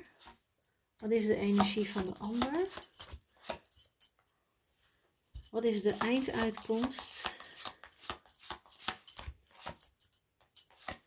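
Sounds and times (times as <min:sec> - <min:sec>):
cards flicked and slapped on table: 0:06.0 - 0:09.8, 0:10.7 - 0:11.0.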